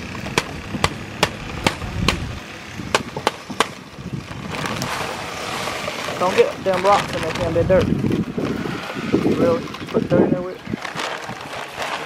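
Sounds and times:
paper bag crackling: 4.2s - 12.0s.

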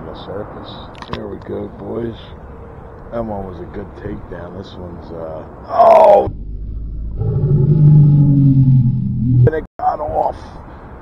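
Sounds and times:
man groaning: 5.7s - 6.3s.

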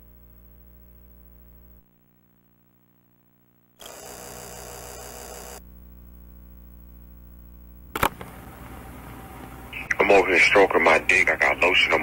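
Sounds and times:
cassette static hiss: 0.0s - 12.0s
electrical hum: 0.0s - 12.0s.

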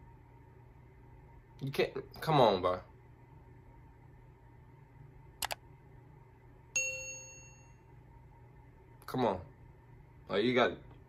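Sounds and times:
bright bell-like ding: 6.8s - 7.8s.

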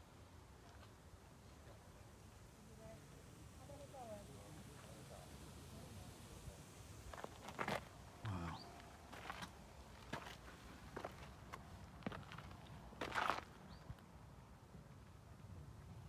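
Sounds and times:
footsteps on boardwalk and dirt: 9.1s - 14.0s.

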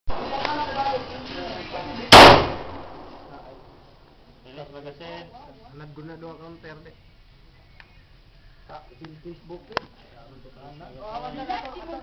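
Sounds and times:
loud sharp bang: 2.1s - 3.8s.

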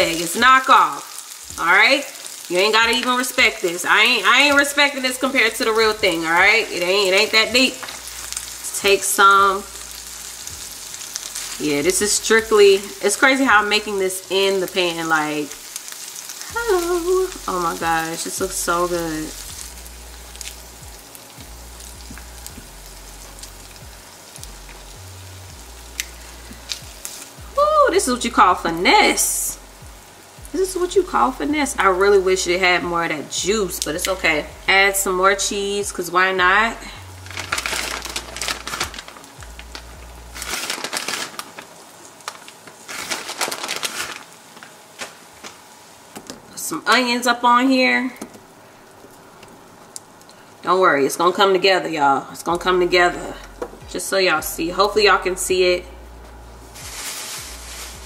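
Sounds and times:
meat sizzling in a frying pan: 0.0s - 52.9s, 56.4s - 58.0s
person speaking: 16.5s - 19.4s.

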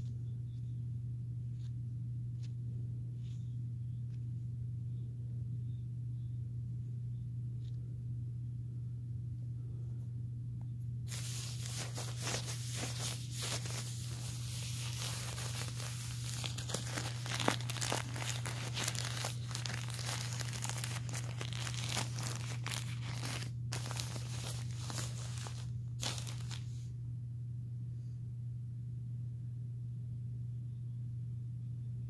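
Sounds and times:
plastic diaper crinkling: 11.1s - 26.8s.

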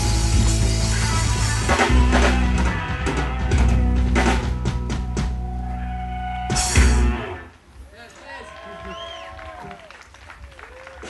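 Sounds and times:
rock band cymbal crash and chord: 0.0s - 5.7s, 6.4s - 7.5s
audience cheering and whooping: 8.0s - 11.0s
scattered clapping: 8.1s - 11.0s.

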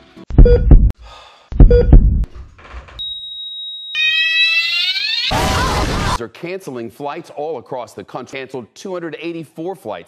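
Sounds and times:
heart monitor flatline beep: 0.4s - 0.9s, 1.6s - 2.2s.

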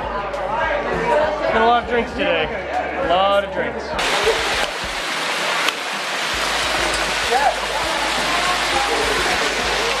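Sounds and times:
hail pelting the ground: 4.0s - 10.0s.

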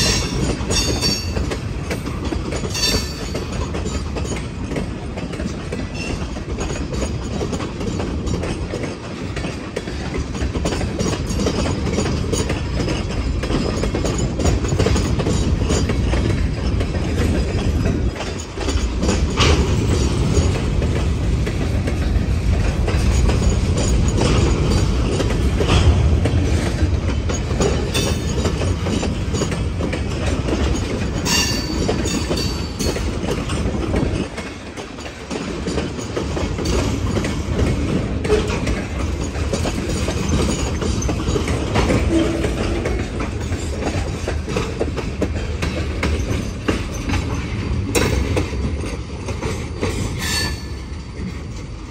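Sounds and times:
freight train rumbling past: 0.0s - 51.9s
wheels clicking over rail joints: 0.0s - 51.9s.

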